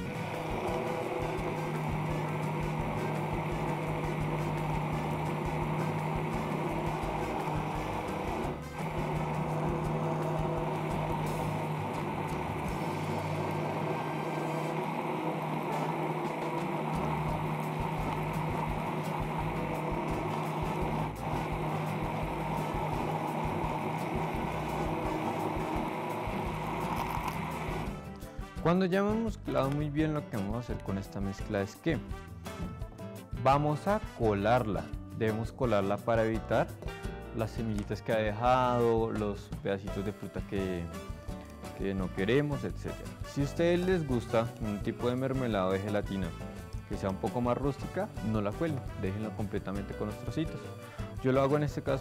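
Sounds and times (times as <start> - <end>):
stick blender motor humming: 0.0 - 28.0.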